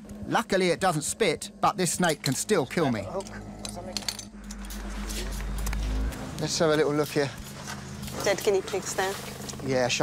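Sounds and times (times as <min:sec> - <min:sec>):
deep soundtrack drone: 0:00.0 - 0:09.7
steady low hum: 0:00.0 - 0:09.7.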